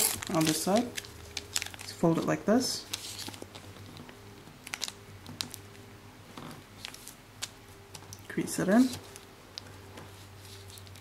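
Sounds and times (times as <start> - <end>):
sharp paper crackles: 0.0 - 2.3, 2.9 - 3.7
paper being folded: 0.0 - 3.7.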